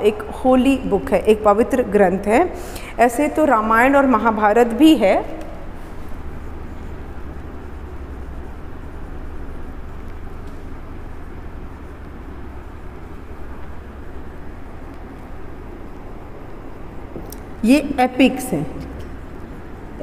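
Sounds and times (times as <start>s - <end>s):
low rumble of background noise: 0.0s - 20.0s.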